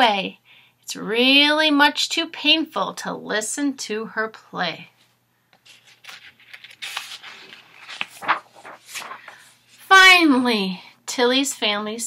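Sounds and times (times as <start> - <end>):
book pages rustling and turning: 5.0 - 9.9.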